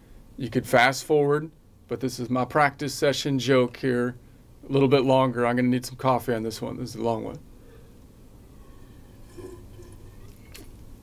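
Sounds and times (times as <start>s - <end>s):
low room noise: 0.0s - 11.0s
person sipping and swallowing: 9.1s - 10.9s.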